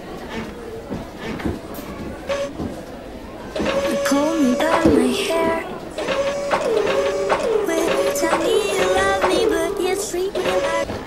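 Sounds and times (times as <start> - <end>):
short noisy burst: 3.5 - 10.9
clicks: 3.5 - 11.0
woman singing: 3.8 - 5.8, 6.7 - 11.0.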